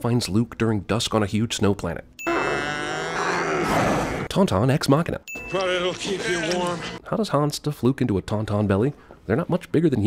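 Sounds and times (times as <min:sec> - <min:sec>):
strained creature cry: 0:02.2 - 0:04.3
bell-like ding: 0:05.3 - 0:05.8.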